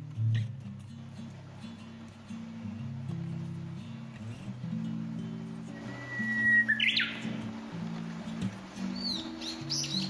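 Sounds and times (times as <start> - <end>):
guitar music: 0.0 - 10.0
bird whistling and calling: 5.7 - 7.4, 8.9 - 10.0.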